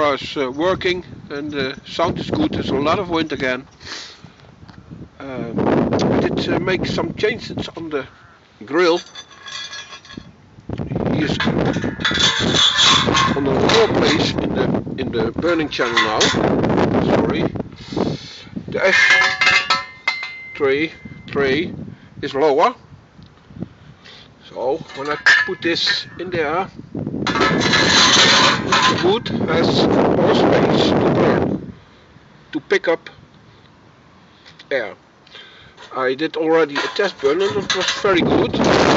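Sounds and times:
steel parts scraping: 7.4 - 10.4, 11.2 - 14.6, 15.2 - 16.8, 17.9 - 21.4, 24.6 - 26.6, 27.2 - 30.9, 35.4 - 38.9
metal grate clinking and rattling: 8.7 - 10.3, 11.2 - 17.3, 18.8 - 21.4, 24.7 - 30.9, 35.8 - 38.9
light metallic ringing: 15.5 - 16.6, 18.8 - 21.4.

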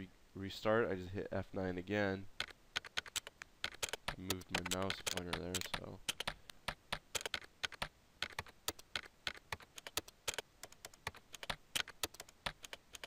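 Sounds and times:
keyboard keystroke clicks: 2.4 - 13.0.

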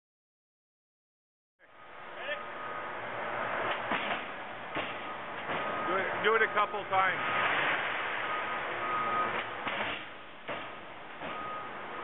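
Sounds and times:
sharp knocks: 9.6 - 11.4.

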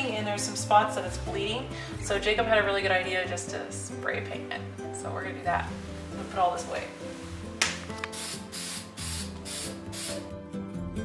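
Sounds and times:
spray paint can hissing: 8.0 - 10.3.

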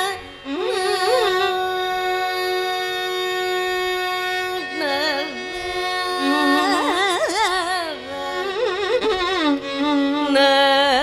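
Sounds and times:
woman singing classical music: 0.0 - 11.0.

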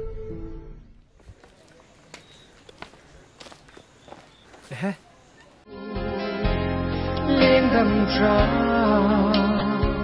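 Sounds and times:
footsteps on dirt path: 1.0 - 5.6.

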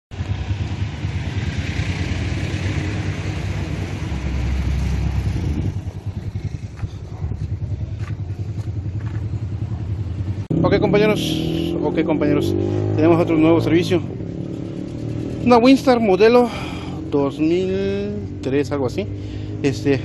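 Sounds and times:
vehicle engine running: 0.1 - 20.0.

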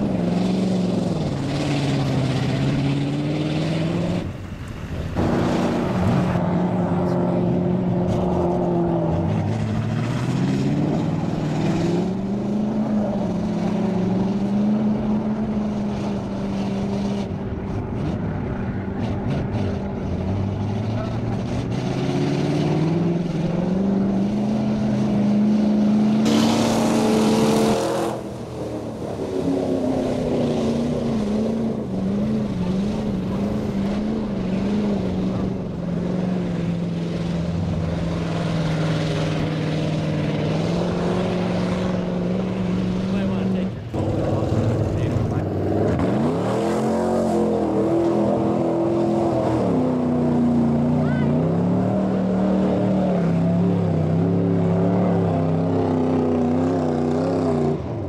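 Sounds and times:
truck engines revving: 0.0 - 58.0
mud and water splashing: 19.6 - 57.7.

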